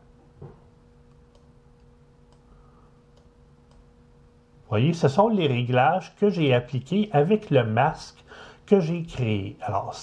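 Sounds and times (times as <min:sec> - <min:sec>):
faint steady hum: 0:00.0 - 0:10.0
computer mouse clicks: 0:01.0 - 0:02.5, 0:03.1 - 0:03.9.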